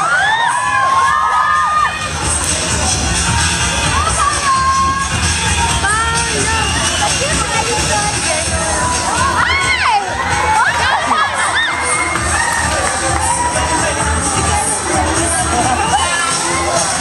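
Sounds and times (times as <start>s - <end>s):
crowd screaming and cheering: 0.0s - 17.0s
dance music with steady beat: 0.0s - 17.0s.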